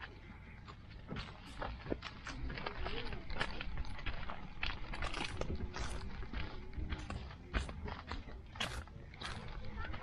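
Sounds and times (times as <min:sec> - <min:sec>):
camera movement rumble: 0:00.0 - 0:10.0
dog paws scuffing on gravel: 0:00.0 - 0:10.0.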